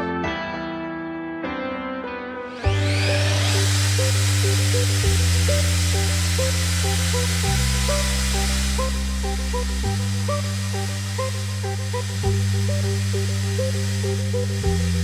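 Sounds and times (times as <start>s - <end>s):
electronic music: 2.4s - 15.0s
impact drill motor whirring: 2.5s - 15.0s.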